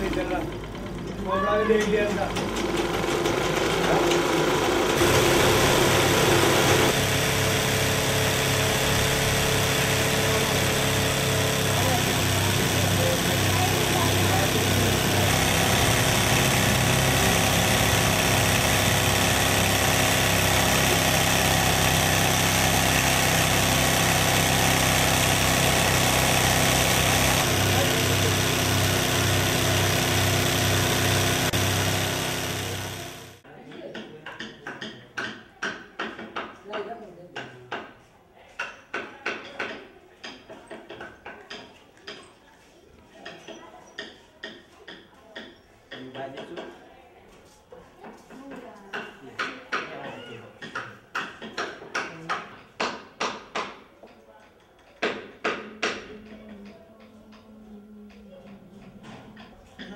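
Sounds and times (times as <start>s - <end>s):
motor-driven machine humming: 0.0s - 33.4s.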